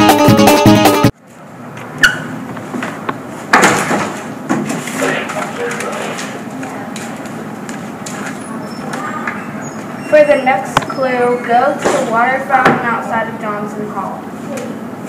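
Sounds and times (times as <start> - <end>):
steady background noise: 1.1 - 15.0.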